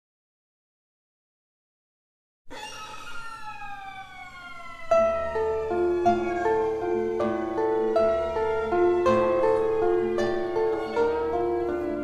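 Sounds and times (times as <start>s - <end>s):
violin sliding bowed note: 2.5s - 11.8s.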